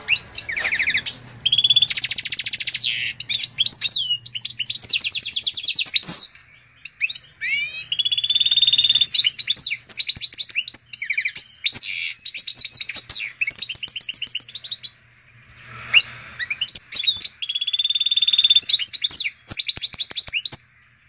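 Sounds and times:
bird singing trills and twitters: 0.0 - 21.0.

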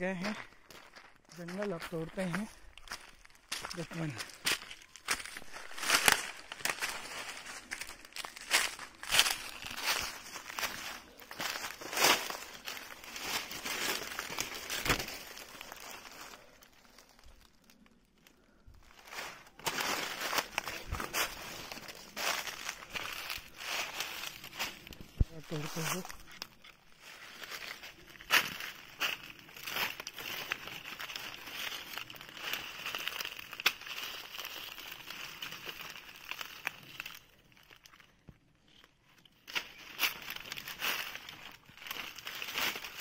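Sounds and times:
leaves and twigs crunching underfoot: 0.0 - 43.0
branches rustling against body: 0.2 - 43.0.

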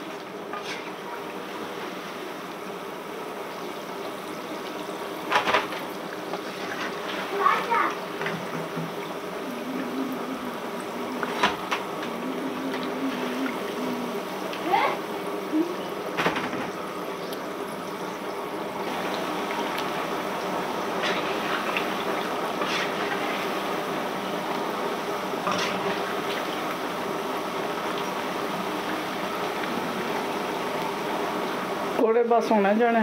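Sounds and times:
food deep-frying in hot oil: 0.0 - 33.0.

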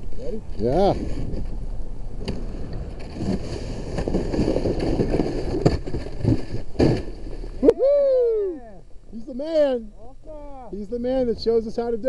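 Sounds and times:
kayak scraping down snowy bank: 0.0 - 7.7
person whooping cheer: 7.6 - 8.8.

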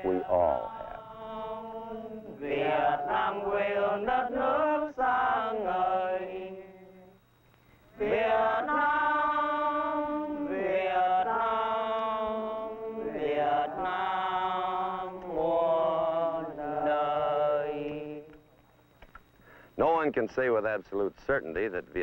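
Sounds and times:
voices singing long held notes: 0.0 - 7.2, 8.0 - 18.4.

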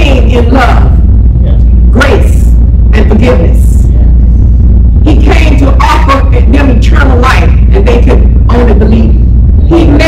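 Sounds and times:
loud low hum: 0.0 - 10.0.

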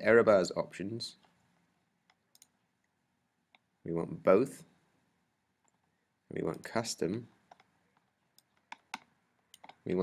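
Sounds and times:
computer mouse clicks: 2.0 - 3.7, 7.4 - 9.8.

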